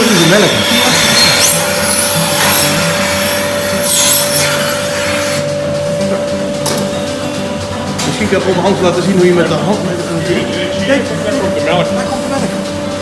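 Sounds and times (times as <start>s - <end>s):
steady tone: 0.7s - 9.0s.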